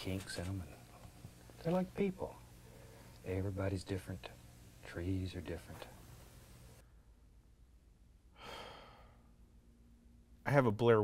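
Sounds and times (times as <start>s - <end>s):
man sighing: 8.4s - 9.2s.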